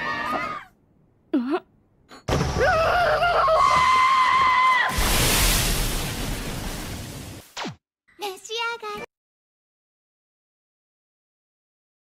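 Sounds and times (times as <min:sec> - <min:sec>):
cartoon explosion blast with rumble: 0:04.9 - 0:07.8.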